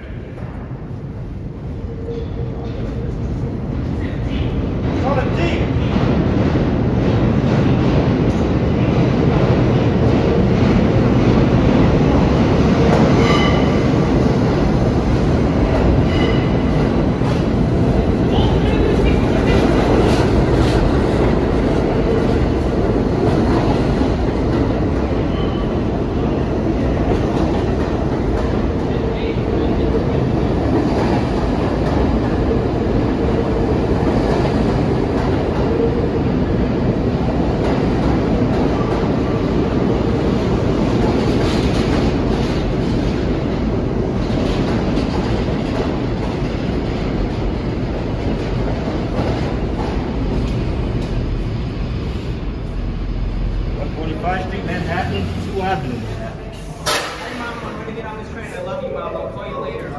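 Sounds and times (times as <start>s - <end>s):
subway train wheels rumbling: 0.0s - 59.9s.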